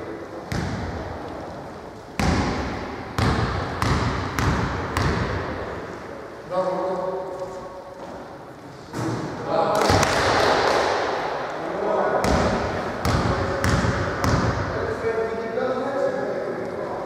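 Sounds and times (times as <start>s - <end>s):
players' voices in echoing hall: 0.0s - 17.0s
basketball bouncing on hardwood floor: 3.2s - 5.4s.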